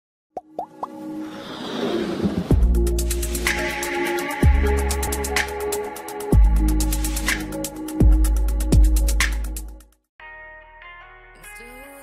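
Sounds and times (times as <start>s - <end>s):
electronic intro music: 0.4s - 9.8s
swelling whoosh effect: 1.0s - 3.7s.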